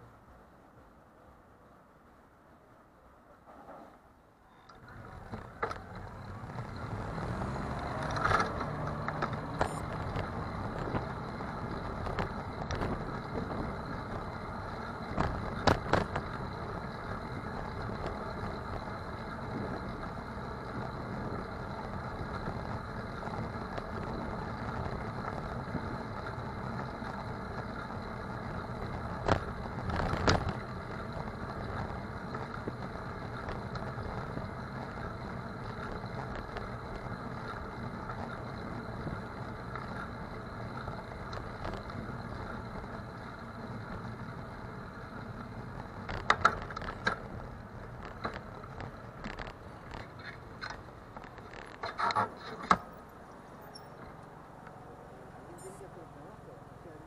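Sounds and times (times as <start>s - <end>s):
bicycle rolling noise: 0.1s - 55.8s.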